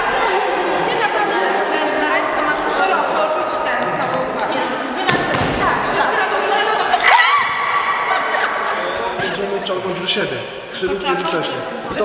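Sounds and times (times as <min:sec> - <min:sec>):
people shrieking and whooping: 0:06.9 - 0:08.9.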